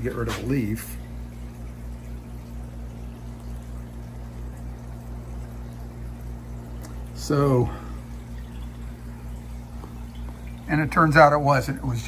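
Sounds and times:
low even hum: 0.0 - 12.0
trickle of moving water: 0.0 - 12.0.

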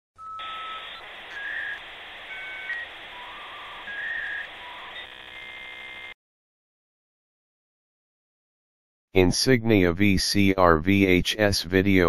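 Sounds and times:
electronic beeping tones: 0.2 - 6.2
steady hiss: 0.5 - 5.0.

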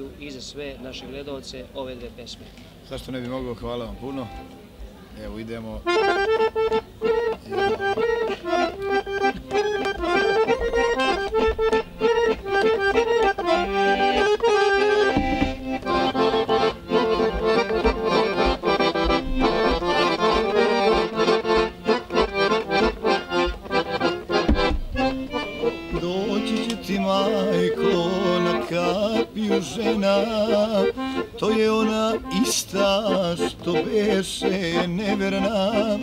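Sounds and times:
accordion folk tune: 2.4 - 36.0.

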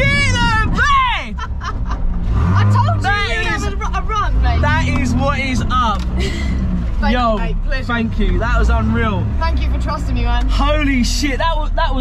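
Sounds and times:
car engine low hum: 0.0 - 12.0
man laughing: 1.0 - 2.1.

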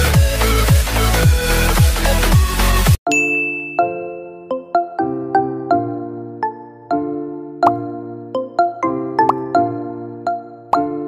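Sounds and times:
dance music: 0.0 - 3.0
bright chime: 3.1 - 4.7
gentle bell-like tune: 3.1 - 5.6.

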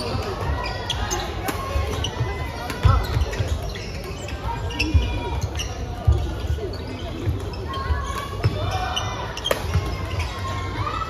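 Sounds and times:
shoes squeaking on wooden floor: 0.0 - 10.5
babble of voices: 0.0 - 11.0.

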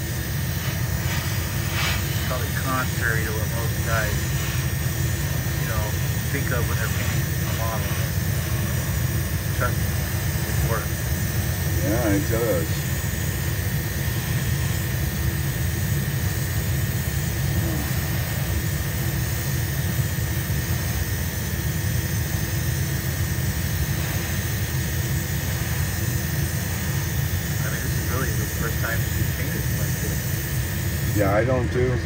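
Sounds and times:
airbrush spraying: 0.0 - 31.2
extraction fan roaring: 0.0 - 32.0.

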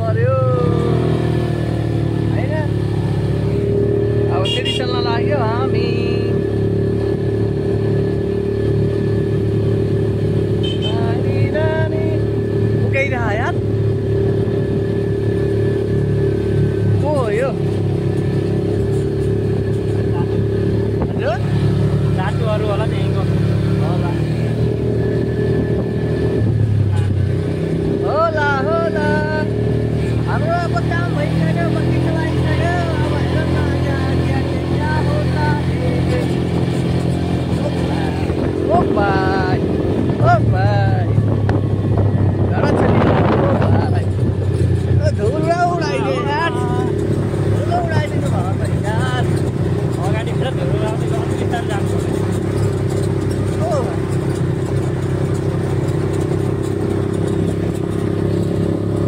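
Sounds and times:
quad bike engine droning: 0.0 - 59.0
voices calling out: 9.6 - 59.0.

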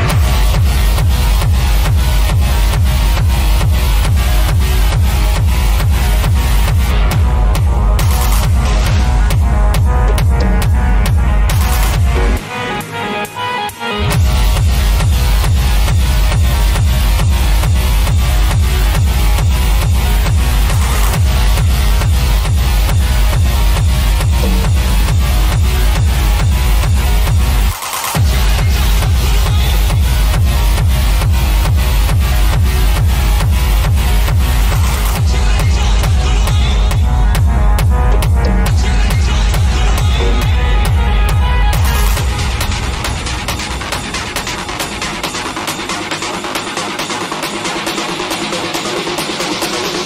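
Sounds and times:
acid techno with kick drum: 0.0 - 50.0.

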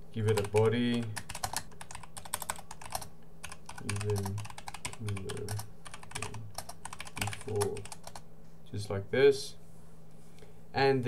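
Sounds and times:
rapid keyboard typing: 0.2 - 8.2.

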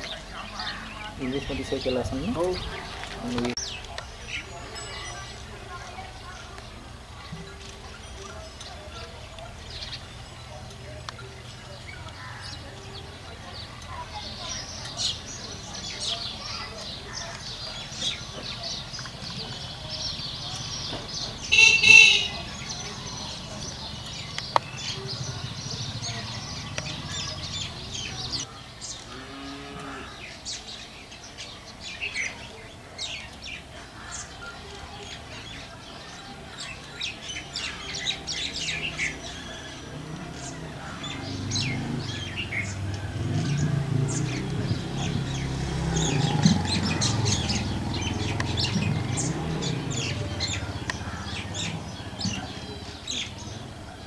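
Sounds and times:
small birds chirping: 0.0 - 54.0.

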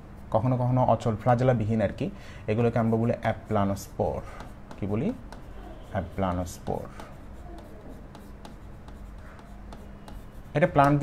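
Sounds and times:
person speaking: 0.3 - 11.0
marker writing on a board: 2.6 - 11.0.

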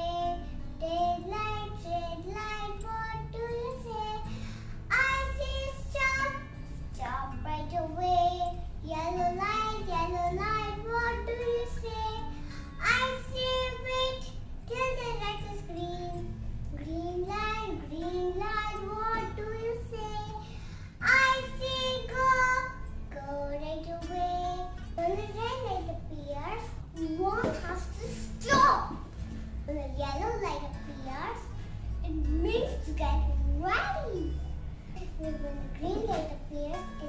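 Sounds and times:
girl singing: 0.0 - 37.0.

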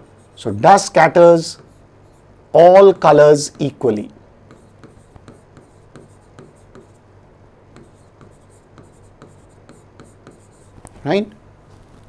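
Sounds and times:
pen scratching on a board: 4.5 - 7.0, 7.7 - 10.8.

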